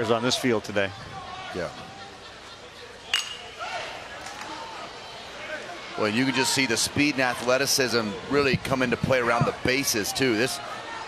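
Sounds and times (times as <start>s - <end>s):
faint crowd voices: 0.0s - 11.0s.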